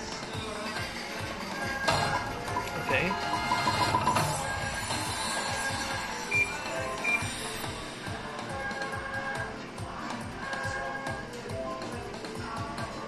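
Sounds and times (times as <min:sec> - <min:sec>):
slot machine music and effects: 0:01.5 - 0:07.6
casino voices: 0:02.1 - 0:04.2.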